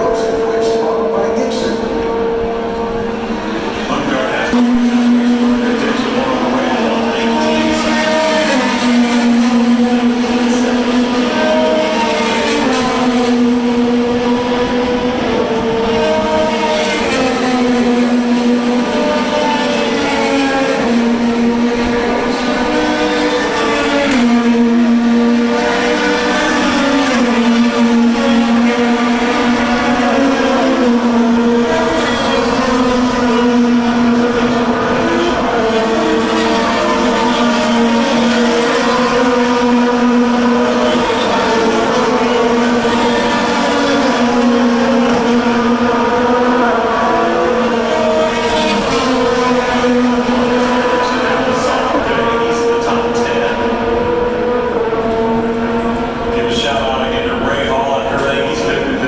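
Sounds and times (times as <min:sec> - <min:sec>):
race car engines shifting gears: 0:00.0 - 0:59.0.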